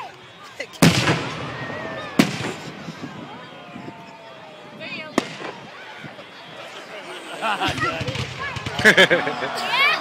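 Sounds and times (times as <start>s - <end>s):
firework bang: 0.8s - 2.8s.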